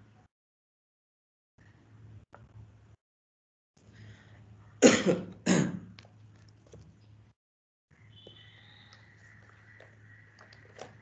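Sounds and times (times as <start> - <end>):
man coughing: 4.8 - 5.8.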